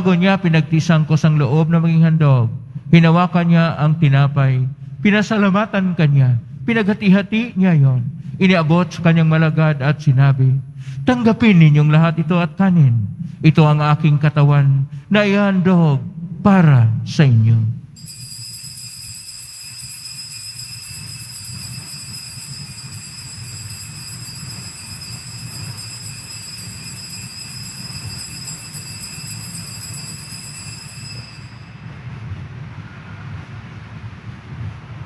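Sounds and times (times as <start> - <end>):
low hum: 0.0 - 35.0
altar bells ringing: 18.0 - 32.0.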